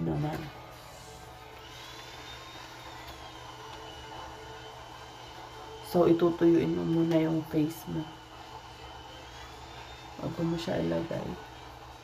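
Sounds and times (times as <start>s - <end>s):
faint high whine: 0.0s - 12.0s
low background hum: 0.0s - 12.0s.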